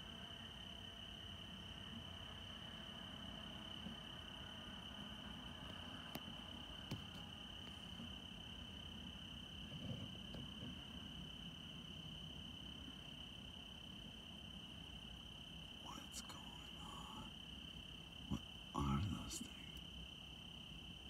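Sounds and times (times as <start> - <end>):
crickets trilling: 0.0 - 21.0.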